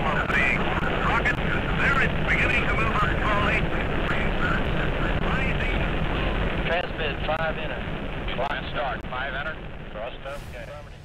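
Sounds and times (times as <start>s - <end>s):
radio voice speaking: 0.0s - 11.0s
rocket engines rumbling: 0.0s - 11.0s.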